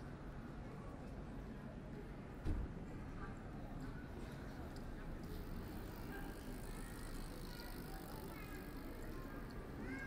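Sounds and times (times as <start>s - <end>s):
din of passers-by and city: 0.0s - 10.0s.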